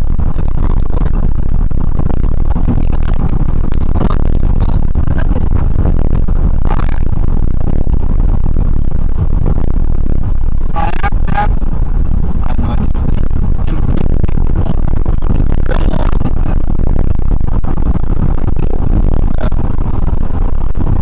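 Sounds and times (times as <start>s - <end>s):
car road noise: 0.0s - 21.0s
wind rumble at car window: 0.0s - 21.0s.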